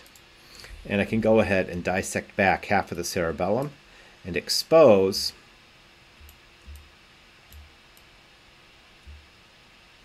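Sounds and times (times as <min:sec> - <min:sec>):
room hiss: 0:00.0 - 0:10.0
faint mouse clicks: 0:07.5 - 0:08.1.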